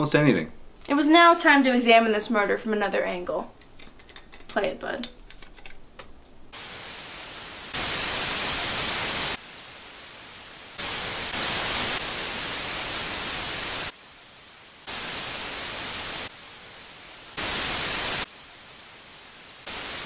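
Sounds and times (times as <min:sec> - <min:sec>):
static hiss: 0:00.0 - 0:20.0.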